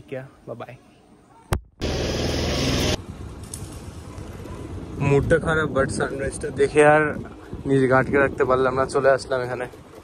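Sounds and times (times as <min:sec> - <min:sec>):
loud rushing noise: 0:01.8 - 0:03.0
wind noise: 0:02.8 - 0:10.0.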